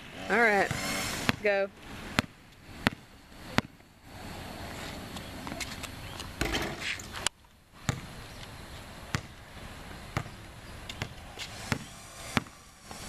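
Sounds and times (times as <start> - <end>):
basketball bouncing on concrete: 0.6 - 1.5, 2.1 - 3.8, 7.8 - 8.2, 9.1 - 9.4, 10.1 - 13.0.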